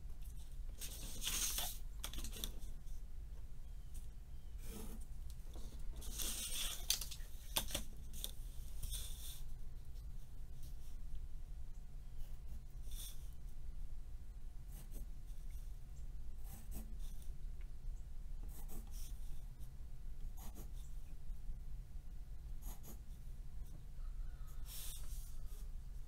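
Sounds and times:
steady low hum: 0.0 - 26.0
pencil drawing along a ruler: 22.6 - 23.0.

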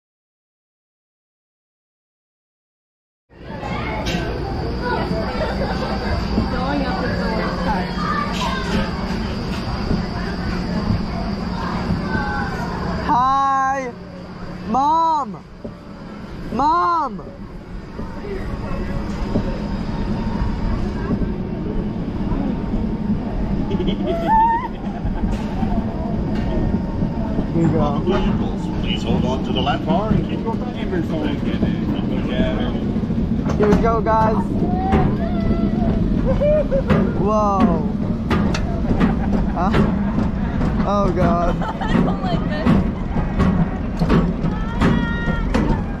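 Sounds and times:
faint voices: 3.4 - 46.0
lift chain low drone: 3.4 - 46.0
roller coaster rumbling on track: 3.4 - 46.0.

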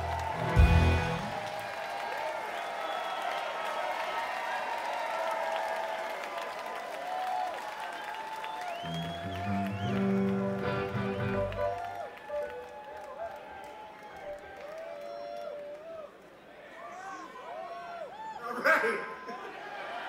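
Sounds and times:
crowd whistling: 0.0 - 4.2, 7.8 - 16.1
crowd applauding and cheering: 0.0 - 18.6.

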